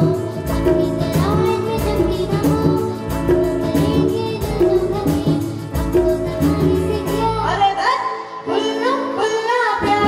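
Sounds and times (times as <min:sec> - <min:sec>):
percussion beat: 0:00.0 - 0:07.3
girl singing into a microphone: 0:00.0 - 0:10.0
keyboards: 0:00.0 - 0:10.0
live band: 0:00.0 - 0:10.0.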